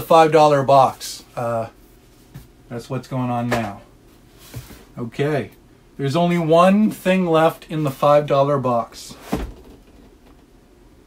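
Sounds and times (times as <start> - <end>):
dull thump: 9.2 - 10.4.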